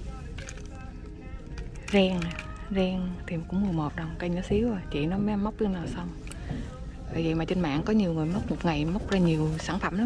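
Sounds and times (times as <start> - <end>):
faint background music: 0.0 - 10.0
low steady hum: 0.0 - 10.0.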